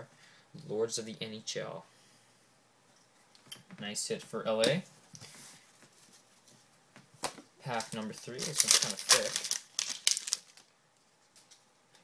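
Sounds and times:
wrapper crinkling torn open: 7.7s - 10.7s.

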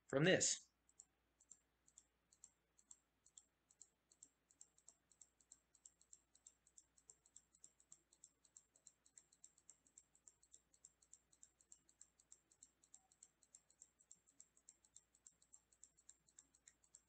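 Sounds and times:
computer mouse clicks: 0.8s - 17.0s.

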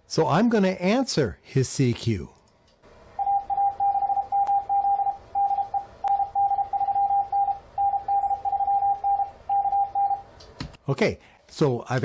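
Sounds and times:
morse code tones: 3.2s - 10.3s.

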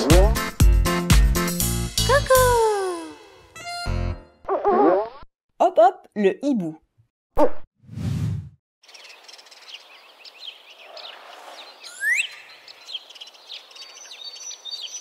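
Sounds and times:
small birds chirping: 8.8s - 15.0s.

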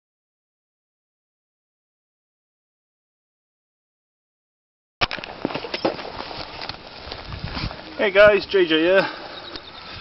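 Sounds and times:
outdoor rustling: 5.0s - 10.0s.

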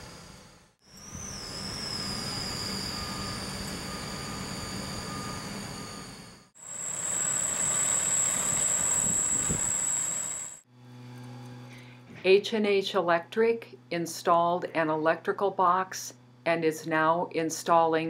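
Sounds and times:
high steady whine: 0.0s - 10.6s
heavy equipment engines running: 1.0s - 10.6s.

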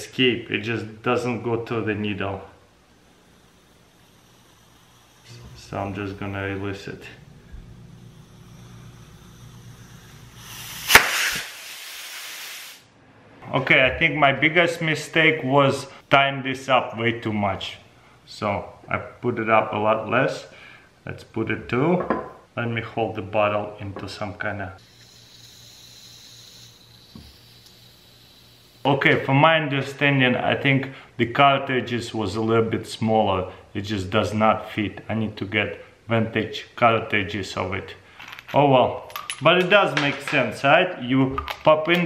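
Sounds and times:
faint hiss and hum: 0.0s - 42.0s
gas hissing from cartridge: 2.9s - 6.0s, 7.4s - 12.9s, 24.8s - 28.9s.

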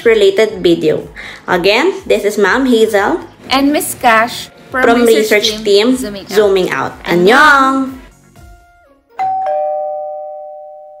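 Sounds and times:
two-note ding-dong chime: 9.1s - 11.0s.

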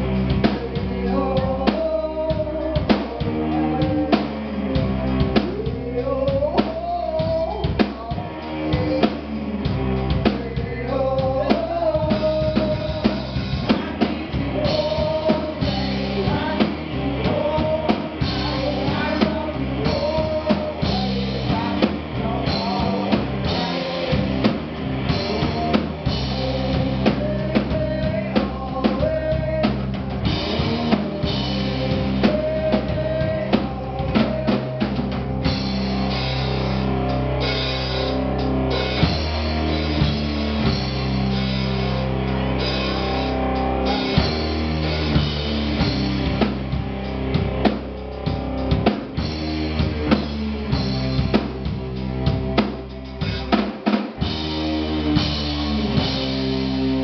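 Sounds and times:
drum kit beat: 0.0s - 57.0s
electric guitars: 0.0s - 57.0s
keyboard: 0.0s - 57.0s.

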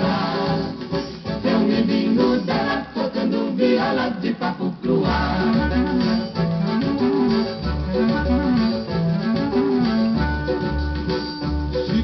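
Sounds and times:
plucked-string melody: 5.4s - 12.0s.

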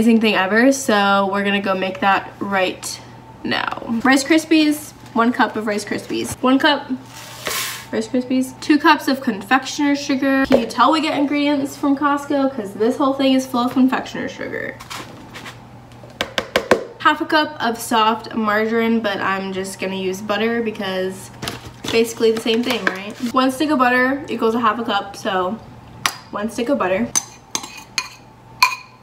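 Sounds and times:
cup knocking plastic bowl: 16.2s - 16.9s
metal spoon clinking on ceramic bowl: 27.1s - 29.0s.

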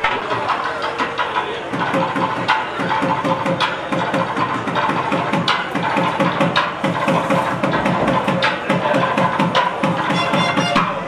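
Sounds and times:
fast continuous drumming: 0.0s - 11.0s.

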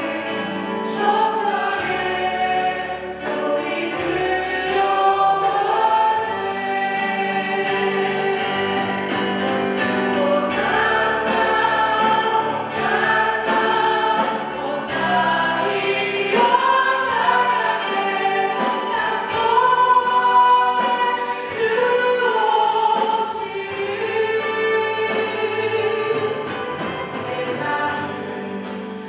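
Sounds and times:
women singing praise song: 0.0s - 9.3s, 10.1s - 28.9s
congregation singing: 0.0s - 29.0s
guitar: 0.0s - 29.0s
keyboard: 0.0s - 29.0s.

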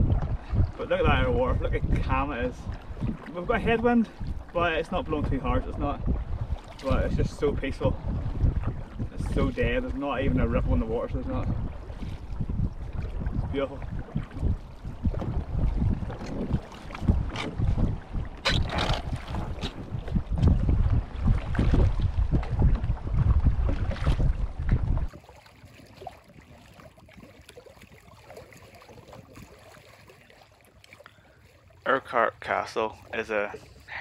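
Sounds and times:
wind buffeting microphone: 0.0s - 29.7s
faint lapping water: 0.0s - 34.0s
water splashing against canoes: 0.0s - 34.0s
paddle strokes: 11.5s - 34.0s.

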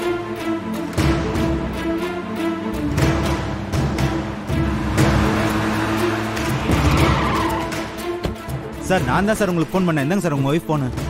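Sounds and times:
background music: 0.0s - 11.0s
car tyres screeching: 2.9s - 8.7s.

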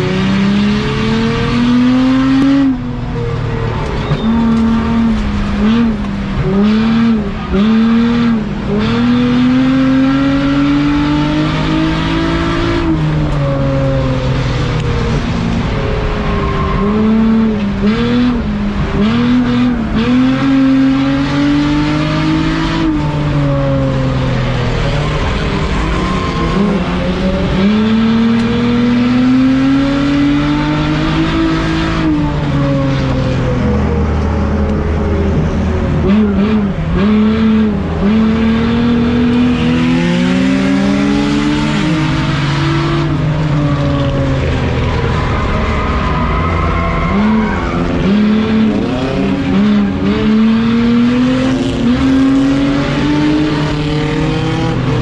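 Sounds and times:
race car engine at speed: 0.0s - 55.0s.

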